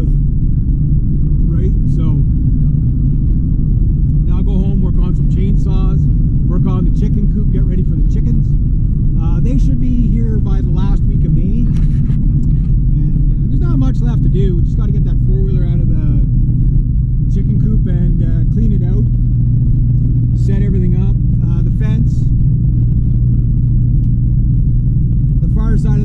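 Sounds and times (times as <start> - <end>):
road and engine rumble in car: 0.0 - 26.0
person talking: 9.2 - 11.9, 12.9 - 16.3, 20.4 - 22.3, 25.4 - 26.0.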